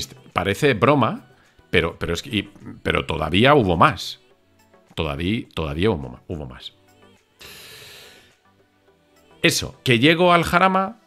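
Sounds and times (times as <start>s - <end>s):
faint background music: 0.0s - 11.0s
man breathing into microphone: 7.4s - 8.4s.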